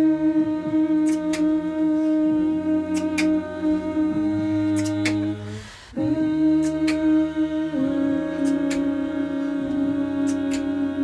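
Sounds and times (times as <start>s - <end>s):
a cappella choir singing chords: 0.0s - 11.0s.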